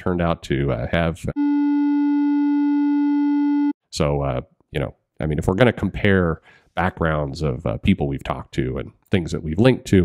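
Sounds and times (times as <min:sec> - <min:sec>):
censor bleep tone: 0:01.4 - 0:03.8
man speaking: 0:03.9 - 0:10.0.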